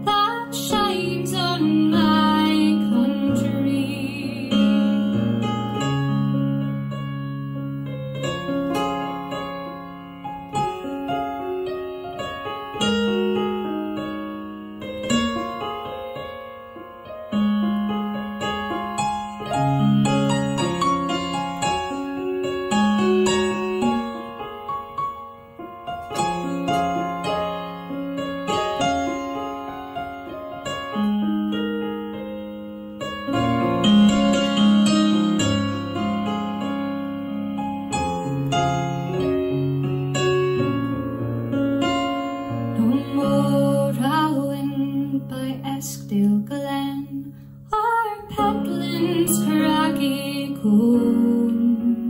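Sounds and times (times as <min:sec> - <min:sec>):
slow piano piece: 0:00.0 - 0:52.0.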